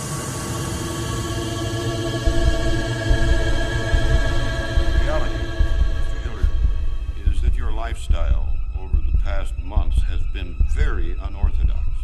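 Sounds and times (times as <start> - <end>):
sustained music tones: 0.0 - 12.0
deep thudding pulse: 2.2 - 12.0
man speaking: 4.9 - 12.0.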